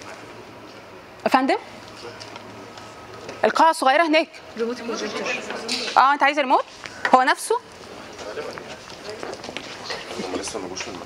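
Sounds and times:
indistinct background talk: 0:00.0 - 0:11.0.

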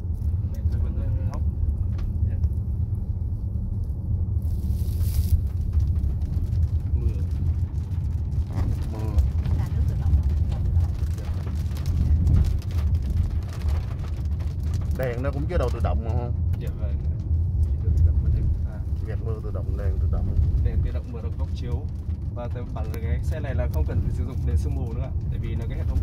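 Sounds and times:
raindrops hitting windshield: 0:00.0 - 0:26.0
tyre and engine rumble: 0:00.0 - 0:26.0.

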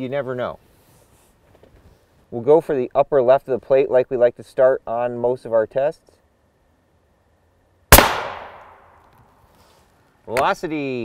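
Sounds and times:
suppressed rifle shot: 0:07.9 - 0:08.9.

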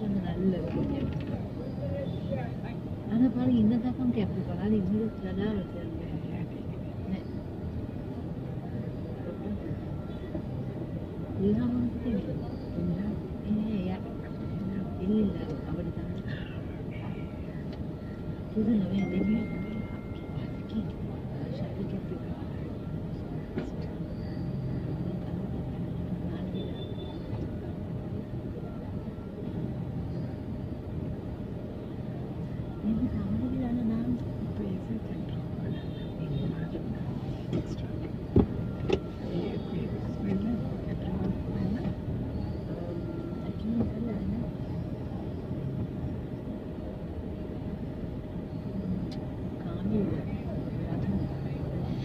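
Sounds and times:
low rumble of traffic: 0:00.0 - 0:52.0
murmur of crowd voices: 0:00.0 - 0:52.0.

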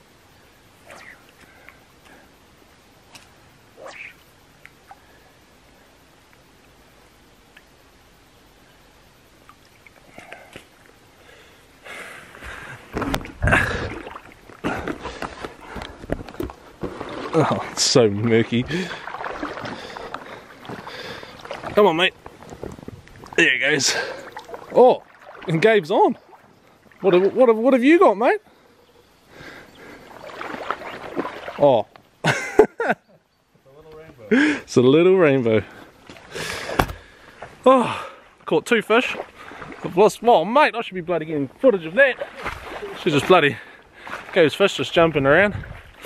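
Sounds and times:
water splashing around wading legs: 0:12.9 - 0:27.6, 0:29.9 - 0:31.9, 0:39.0 - 0:40.2, 0:42.1 - 0:44.5.

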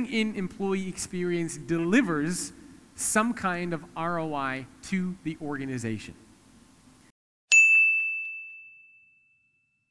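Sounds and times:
high bell ding: 0:07.5 - 0:09.9.

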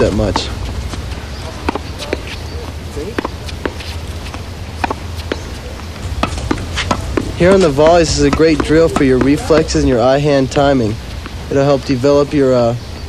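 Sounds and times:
low steady hum: 0:00.0 - 0:13.0
tennis ball struck with racket: 0:00.2 - 0:09.8.

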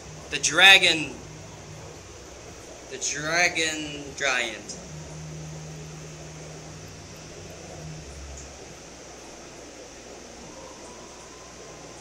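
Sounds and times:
even hiss: 0:00.0 - 0:12.0
low mechanical hum: 0:00.0 - 0:12.0.

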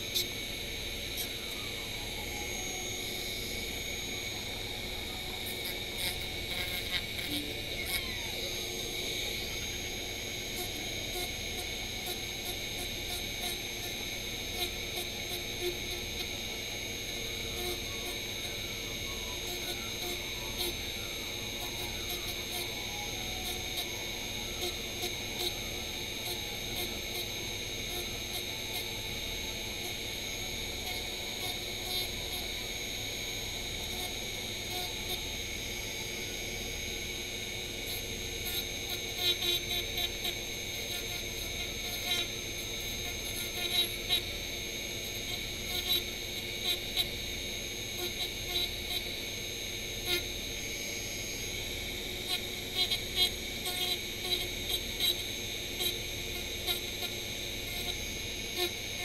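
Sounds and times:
rotary tool high whine: 0:00.0 - 0:59.0.

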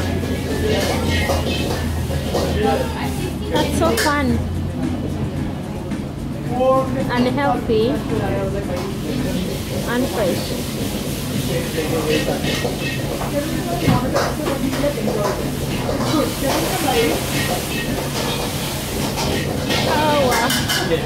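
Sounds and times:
metal ladles scraping in woks: 0:00.0 - 0:04.3, 0:08.6 - 0:21.0
gas burners humming and hissing: 0:00.0 - 0:21.0.

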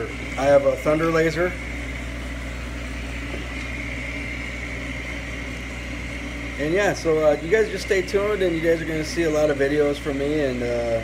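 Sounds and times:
laser engraver machine hum: 0:00.0 - 0:11.0.

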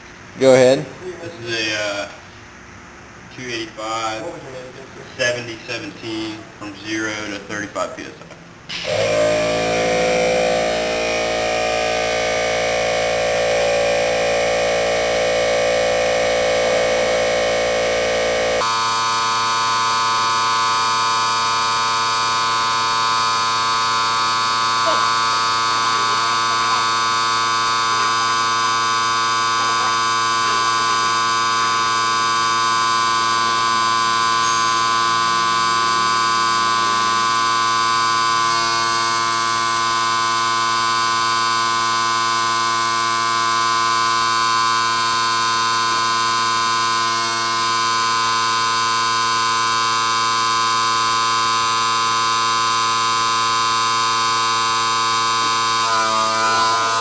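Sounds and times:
air compressor buzzing: 0:08.5 - 0:57.0.

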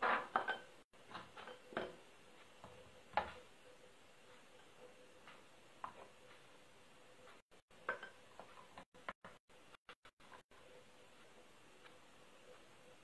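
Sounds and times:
glass bowls clinking: 0:00.3 - 0:00.8.

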